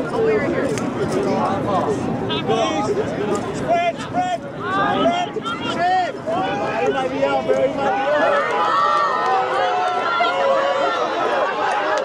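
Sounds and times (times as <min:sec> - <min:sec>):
babble of spectators' voices: 0:00.0 - 0:12.0.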